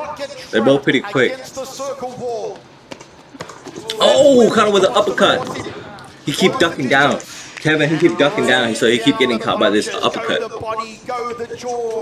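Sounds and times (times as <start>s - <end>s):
man's voice: 0.0s - 2.6s, 3.9s - 12.0s.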